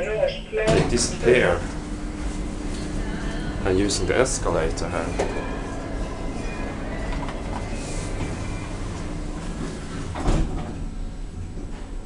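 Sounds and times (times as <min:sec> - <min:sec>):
escalator humming and rumbling: 0:00.0 - 0:12.0.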